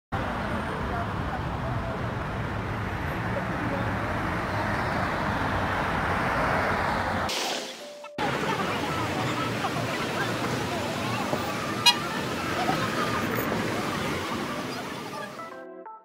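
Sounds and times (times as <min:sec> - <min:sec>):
cars driving past: 0:00.2 - 0:15.5.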